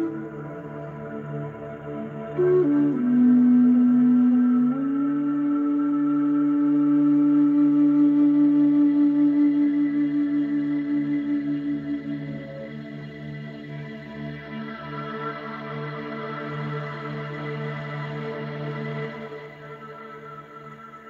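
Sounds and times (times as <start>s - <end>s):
wooden flute melody: 0.0s - 21.0s.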